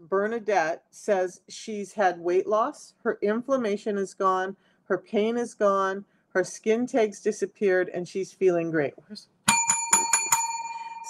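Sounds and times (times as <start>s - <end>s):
small bell ringing: 9.5s - 11.0s.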